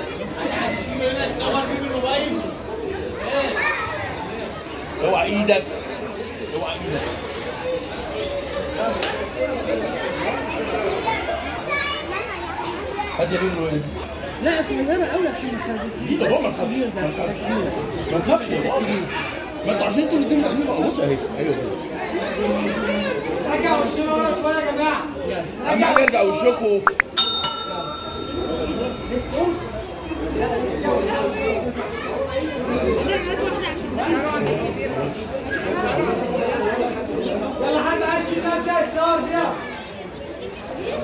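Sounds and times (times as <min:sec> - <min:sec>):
bright bell ding: 0:26.9 - 0:29.8.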